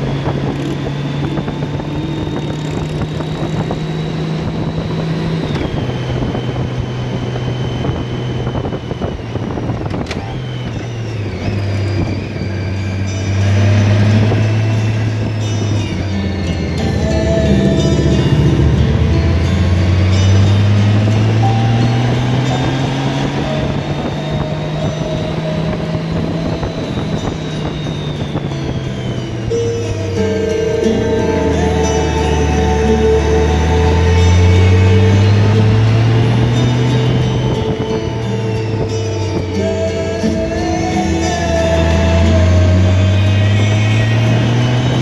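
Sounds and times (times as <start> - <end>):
motorcycle engine running: 0.0 - 45.0
music: 0.0 - 45.0
wind noise: 0.0 - 45.0.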